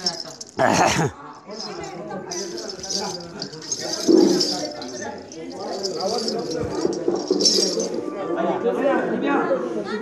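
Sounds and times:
metallic jingle: 0.0 - 8.1.

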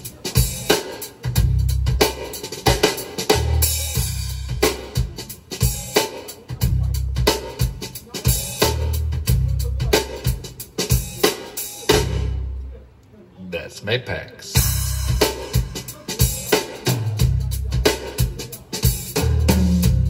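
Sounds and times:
drum kit through loudspeakers: 0.0 - 13.0, 13.6 - 20.0.

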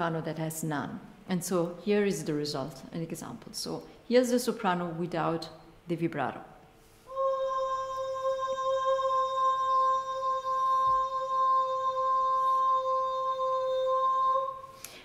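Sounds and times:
soprano holding a sung note: 7.1 - 14.8.

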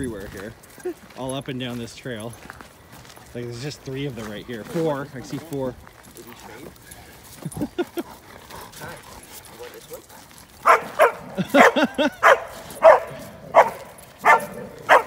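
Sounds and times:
dog barking in play: 10.6 - 15.0.

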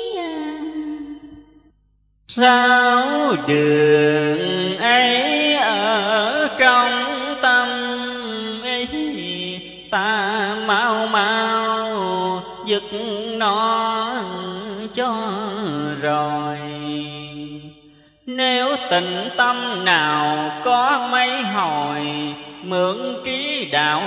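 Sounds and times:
man chanting: 2.3 - 17.7, 18.3 - 24.0.

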